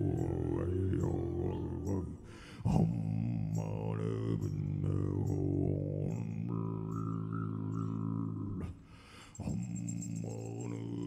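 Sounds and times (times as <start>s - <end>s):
throat singing: 0.0s - 11.0s
person breathing: 2.1s - 2.8s, 8.7s - 9.5s.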